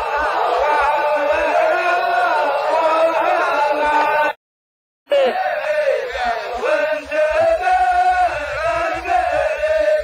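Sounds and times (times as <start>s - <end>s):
men chanting in unison: 0.0s - 4.4s, 5.1s - 10.0s.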